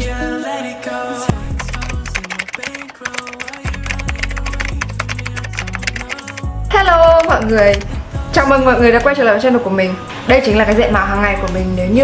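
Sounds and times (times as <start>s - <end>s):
background music with bass line: 0.0s - 0.5s, 1.2s - 2.3s, 3.6s - 9.1s
keyboard typing clicks: 1.5s - 6.5s.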